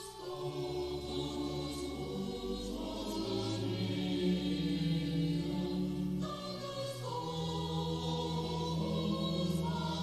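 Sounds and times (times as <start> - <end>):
choral hymn singing: 0.0 - 10.0.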